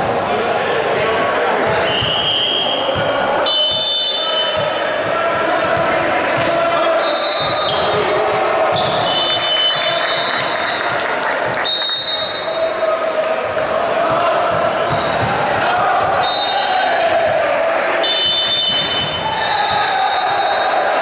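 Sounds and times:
echoing voices: 0:00.0 - 0:21.0
volleyball being struck: 0:13.5 - 0:16.2, 0:18.0 - 0:19.9.

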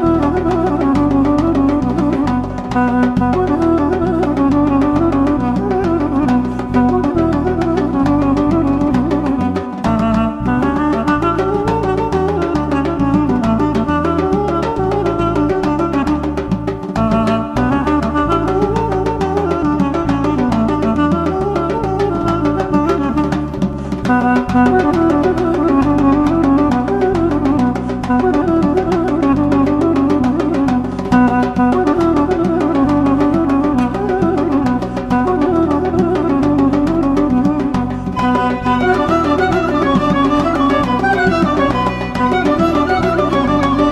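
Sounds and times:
drums: 0:00.0 - 0:43.9
duduk playing folk dance melody: 0:00.0 - 0:43.9
rhythmic bass accompaniment: 0:00.0 - 0:43.9.

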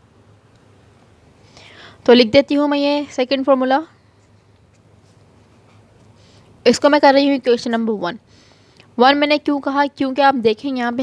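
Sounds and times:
faint room hiss: 0:00.0 - 0:11.0
soft breath: 0:01.3 - 0:02.1, 0:05.0 - 0:06.6, 0:08.2 - 0:08.9
person speaking: 0:02.0 - 0:04.0, 0:06.6 - 0:08.2.

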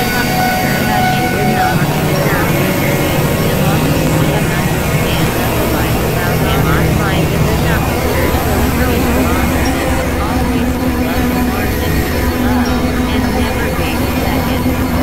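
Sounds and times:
dense low rumble: 0:00.0 - 0:15.0.

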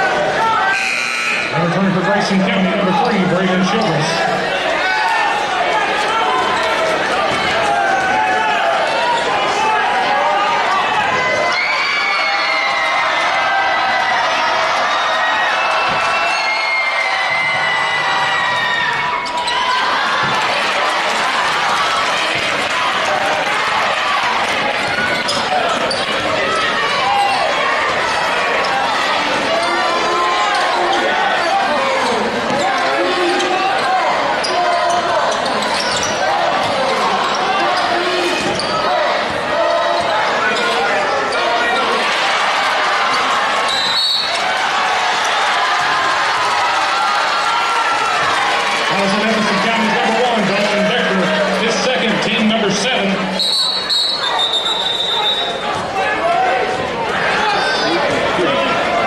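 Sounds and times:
crowd voices: 0:00.0 - 0:59.0
players shouting: 0:00.0 - 0:59.0
shoe squeaks: 0:24.9 - 0:26.2, 0:34.4 - 0:36.3, 0:53.3 - 0:55.6, 0:57.4 - 0:58.0.

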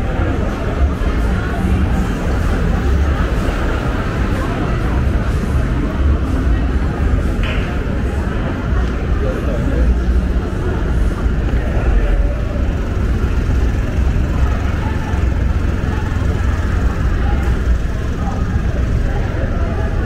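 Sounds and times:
people talking: 0:00.0 - 0:20.0
traffic rumble: 0:00.0 - 0:20.0.

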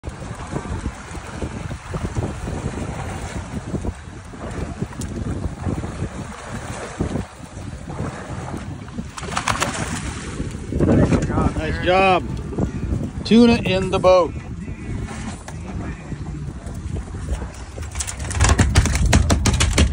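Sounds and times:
water sloshing against hull: 0:00.0 - 0:19.9
wind buffeting microphone: 0:00.0 - 0:19.9
fish thrashing and splashing: 0:07.9 - 0:10.5.

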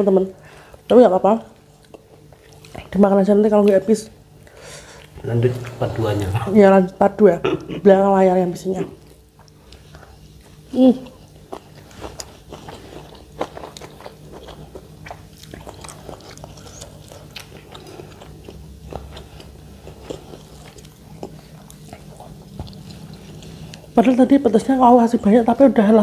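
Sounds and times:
chewing and lip smacks: 0:01.5 - 0:03.8, 0:08.8 - 0:24.0.

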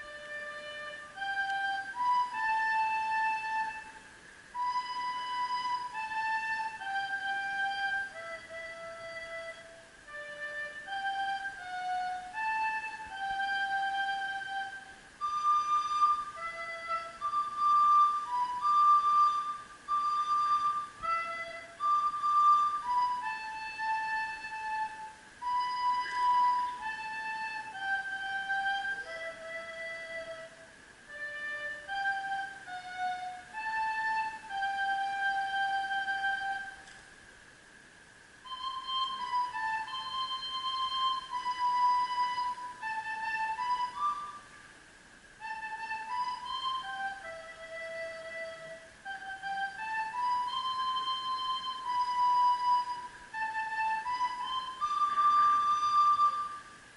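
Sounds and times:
solo recorder melody: 0:00.0 - 0:56.9.

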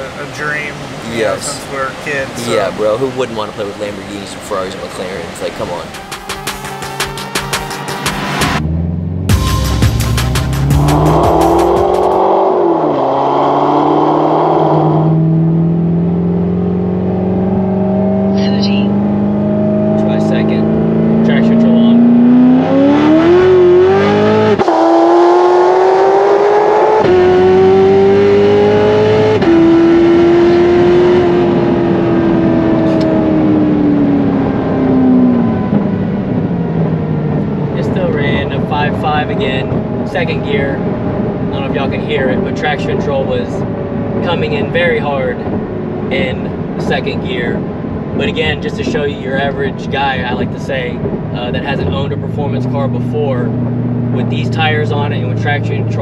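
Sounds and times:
car engine accelerating through gears: 0:04.3 - 0:56.0.

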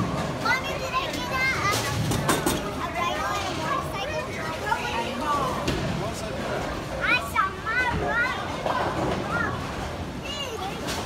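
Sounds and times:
children talking and calling out: 0:00.2 - 0:05.6, 0:06.9 - 0:11.0.

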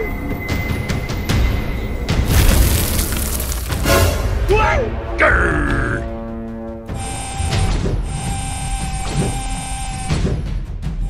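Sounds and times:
tense background music: 0:00.0 - 0:11.0.

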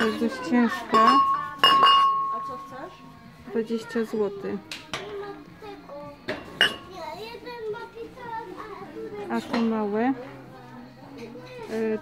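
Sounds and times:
ceramic pot clinking: 0:00.9 - 0:02.6, 0:06.3 - 0:06.9.

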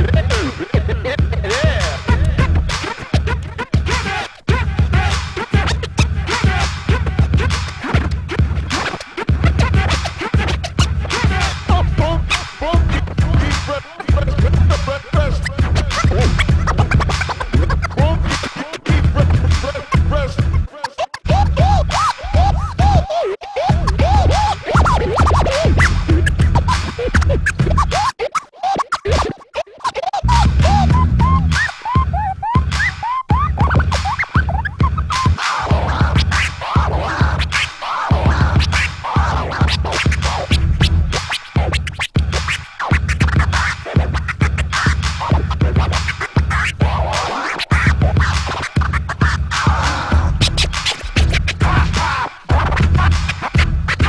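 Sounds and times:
hip-hop beat: 0:00.0 - 0:54.0
turntable scratching: 0:00.0 - 0:54.0.

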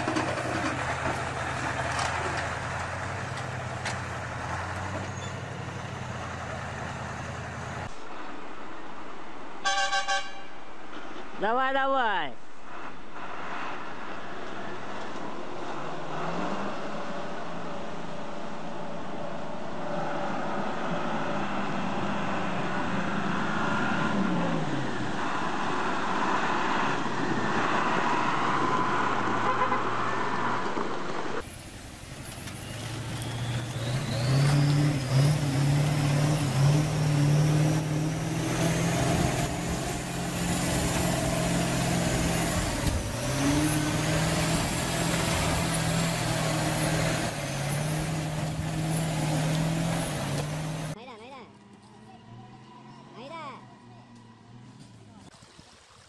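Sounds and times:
heavy truck engine labouring: 0:00.0 - 0:08.2, 0:18.5 - 0:51.0
rushing river water: 0:55.3 - 0:56.0.

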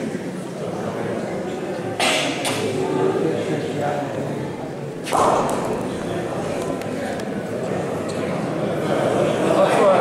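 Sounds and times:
voices in hall: 0:00.0 - 0:10.0.

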